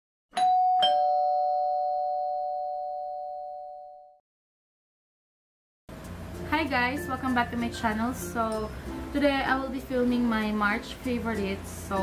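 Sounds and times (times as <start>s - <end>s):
two-note doorbell chime: 0.4s - 4.2s.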